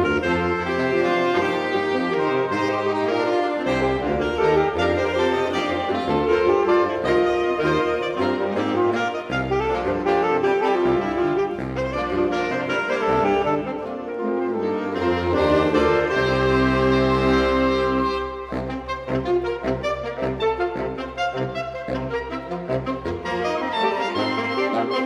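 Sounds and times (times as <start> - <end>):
baritone saxophone bass line: 0.0 - 25.0
saxophone ensemble playing harmony: 0.0 - 25.0.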